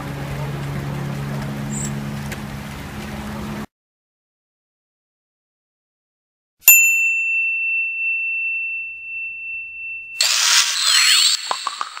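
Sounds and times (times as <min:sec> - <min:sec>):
bright ding: 0:06.6 - 0:11.6.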